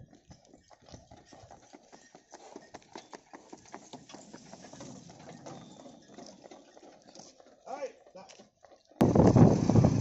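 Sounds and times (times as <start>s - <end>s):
hooves clip-clopping on pavement: 0.0s - 10.0s.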